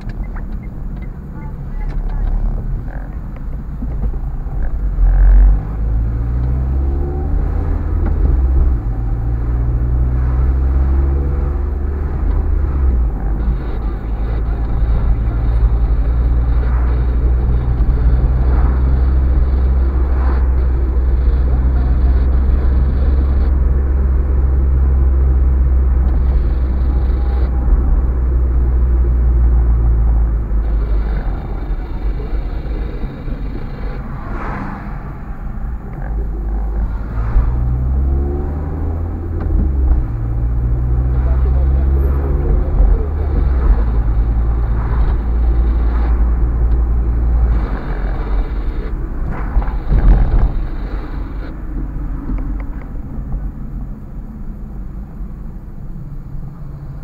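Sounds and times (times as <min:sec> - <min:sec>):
car engine and tyre noise: 0:00.0 - 0:57.0.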